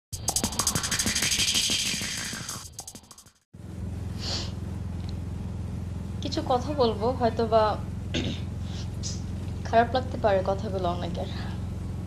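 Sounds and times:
low engine drone: 0.2s - 12.0s.

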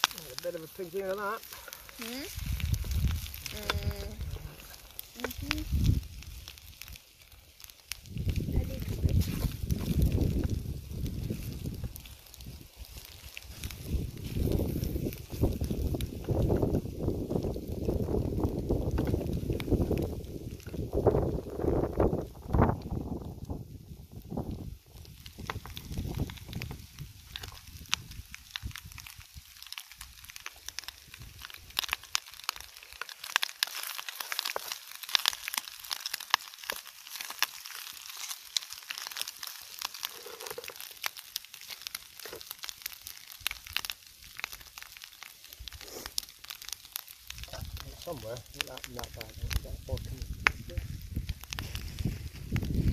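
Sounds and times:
bacon and eggs sizzling: 0.0s - 52.9s
campfire crackling: 0.0s - 52.9s
wind rumble on microphone: 2.2s - 7.0s, 7.9s - 29.5s, 30.1s - 32.2s, 47.2s - 52.9s.

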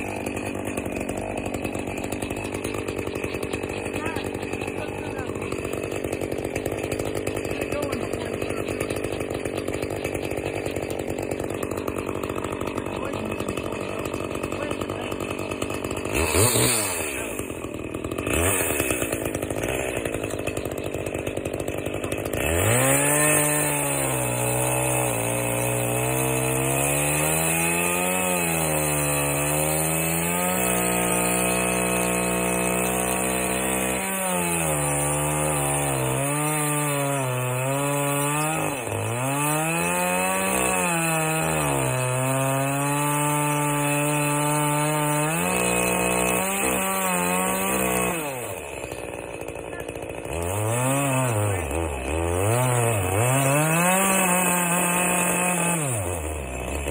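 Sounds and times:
chainsaw cutting log: 0.0s - 56.9s.

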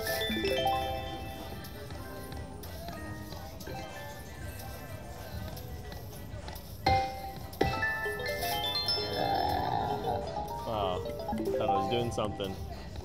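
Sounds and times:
rising chime tones: 0.0s - 1.8s, 7.9s - 12.2s
slot machine jingle: 0.0s - 2.4s, 6.9s - 12.5s.

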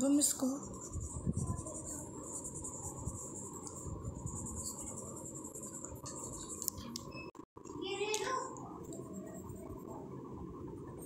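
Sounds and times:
pastel rubbing on paper: 0.2s - 6.7s.

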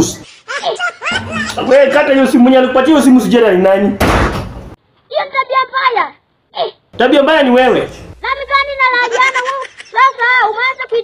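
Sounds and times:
person speaking: 1.1s - 4.0s
sudden thump with noise burst: 4.0s - 4.8s.

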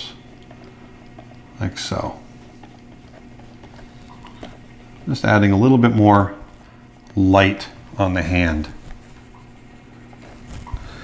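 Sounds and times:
low electrical hum: 0.0s - 11.0s
stylus scratching on drawing tablet: 8.0s - 11.0s.

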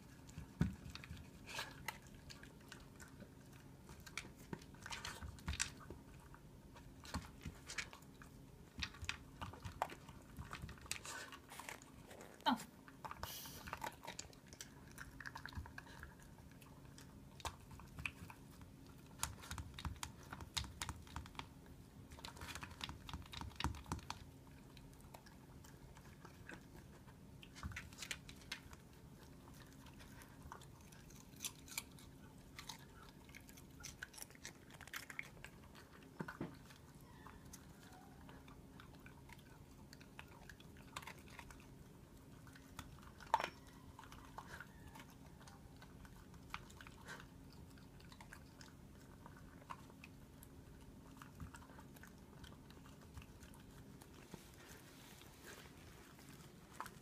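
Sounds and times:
dog crunching vegetables: 0.0s - 57.0s.

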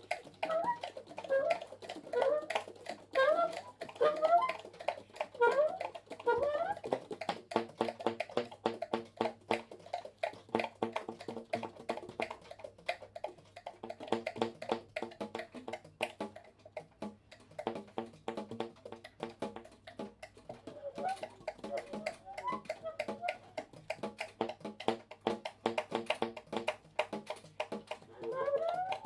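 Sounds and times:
saxophones playing staccato notes: 5.3s - 7.1s.

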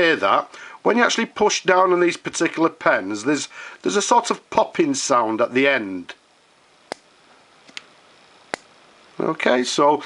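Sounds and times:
small click: 6.9s - 7.1s, 7.7s - 7.9s, 8.5s - 8.7s.

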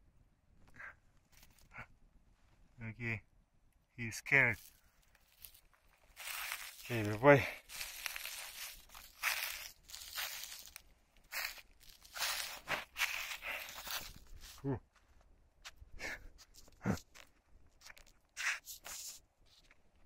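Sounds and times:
leaves rustling: 4.5s - 14.7s
footsteps on dry leaves: 4.6s - 14.6s
man making low vocal sounds: 14.5s - 14.9s.

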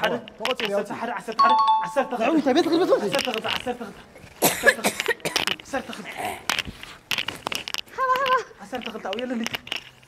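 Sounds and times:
two-note chime: 1.4s - 2.2s.

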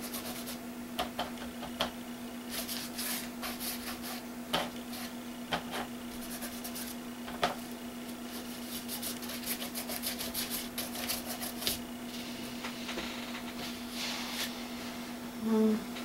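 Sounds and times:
paint strokes scratching paper: 0.0s - 0.6s, 2.5s - 4.2s, 6.2s - 7.0s, 8.3s - 11.8s
steady low hum: 0.0s - 16.0s.

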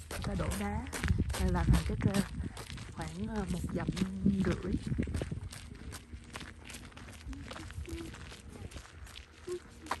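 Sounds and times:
footsteps on gravel trail: 0.0s - 10.0s.

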